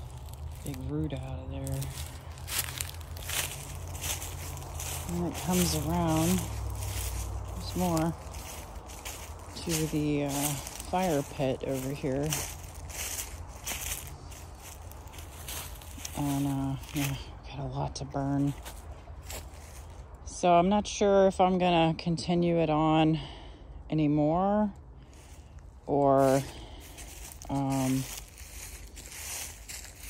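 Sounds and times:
footsteps crunching dry leaves: 0.0 - 20.2, 25.0 - 30.0
low rumble: 0.0 - 20.3.

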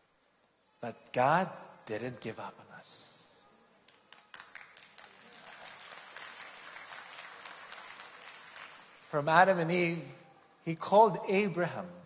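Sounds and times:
audience applause: 3.9 - 9.2.

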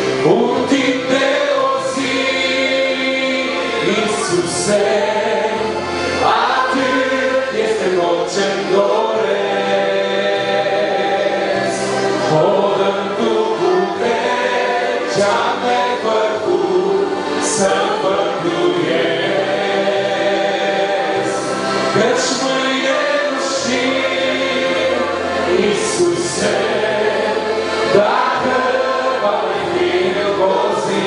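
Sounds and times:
congregation singing a hymn: 0.0 - 31.0.

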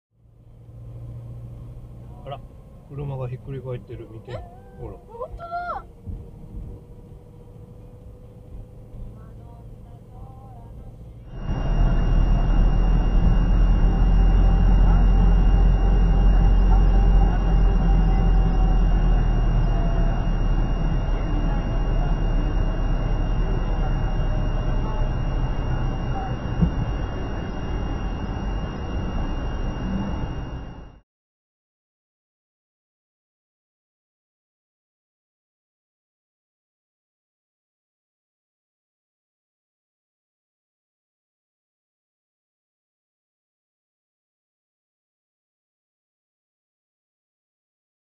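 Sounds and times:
engine and road rumble: 0.1 - 31.0
thin high whine: 10.2 - 31.0.

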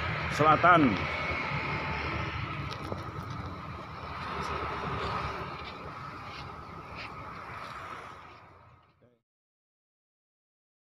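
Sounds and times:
road traffic rumble: 0.0 - 9.2.

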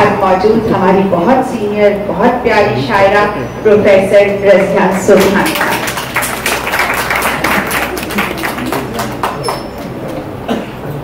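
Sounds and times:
audience applause: 5.0 - 10.4.

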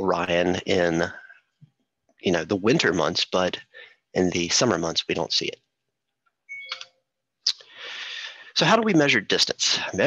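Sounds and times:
man speaking: 0.0 - 1.5, 2.2 - 5.7, 7.4 - 10.0
short clicks: 6.6 - 7.0.

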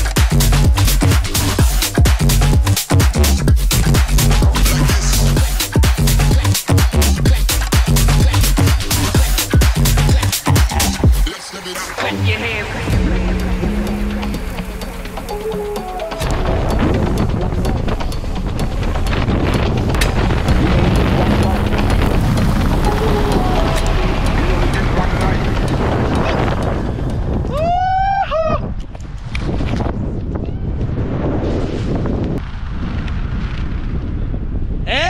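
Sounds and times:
wind rushing over microphone: 16.2 - 35.0
high wavering whoop: 27.4 - 28.8.

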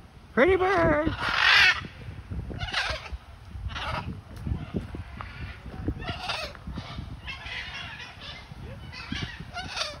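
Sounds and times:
macaw squawking: 0.6 - 1.9, 2.6 - 4.1, 4.7 - 10.0.

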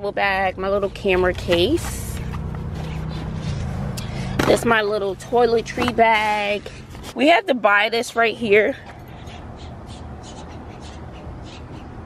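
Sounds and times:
low outdoor rumble: 0.0 - 12.0
bird cawing: 8.8 - 12.0.

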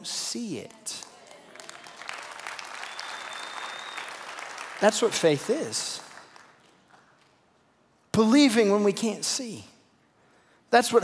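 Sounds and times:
congregation applauding: 0.6 - 7.4.

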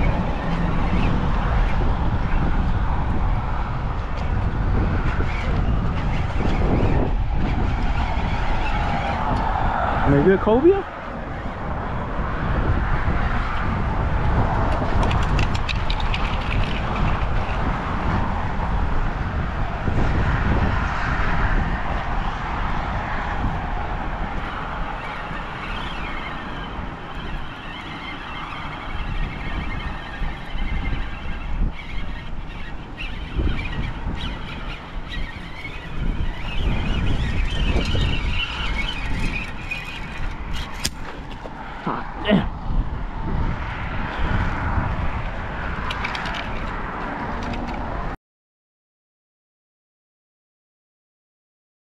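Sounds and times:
wind buffeting microphone: 0.0 - 48.2
fishing reel squeal: 5.1 - 9.4, 24.4 - 41.2.

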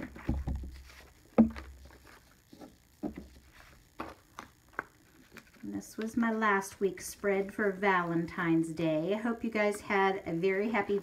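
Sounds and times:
paper handling: 0.1 - 6.6.

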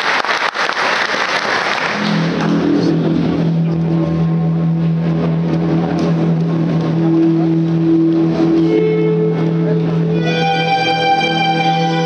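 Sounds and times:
low synthesizer drone: 1.8 - 12.0.

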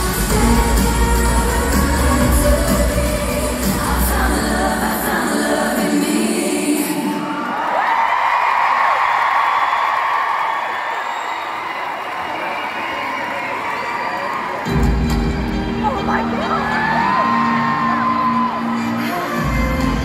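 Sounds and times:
live pop music with heavy bass: 0.0 - 7.4, 14.7 - 20.0
crowd cheering and screaming: 7.0 - 20.0.

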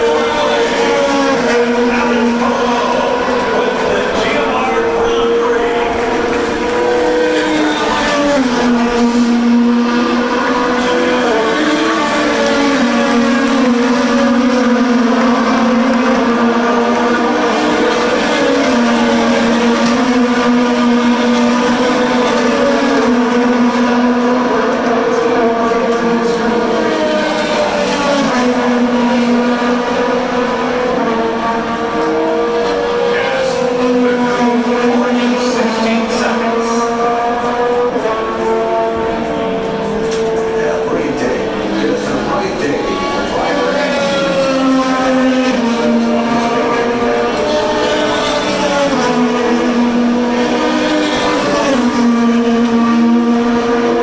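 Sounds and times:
race car engines shifting gears: 0.0 - 54.0.

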